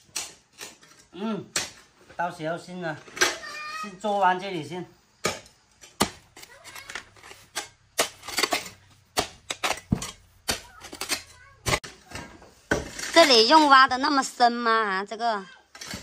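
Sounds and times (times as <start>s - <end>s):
hoe striking stony soil: 5.2s - 13.9s, 15.7s - 16.0s
blade scraping dirt and grit: 5.3s - 14.4s, 15.7s - 16.0s.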